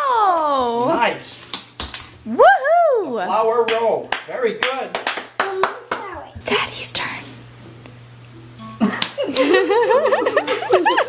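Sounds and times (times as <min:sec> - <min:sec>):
man clapping hands: 0:03.7 - 0:06.1, 0:09.0 - 0:09.6, 0:10.3 - 0:11.0.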